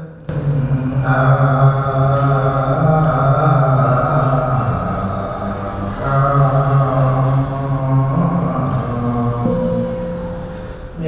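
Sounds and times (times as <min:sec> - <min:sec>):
monk chanting into a microphone: 0:00.0 - 0:11.0.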